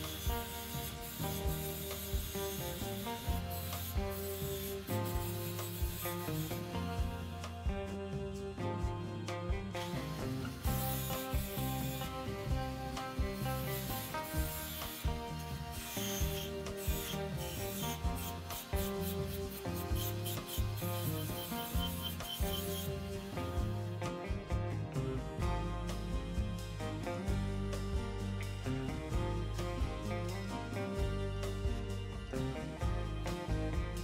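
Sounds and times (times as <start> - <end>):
rotary tool grinding metal: 0.0 - 7.6, 9.8 - 24.1
background music: 0.0 - 34.0.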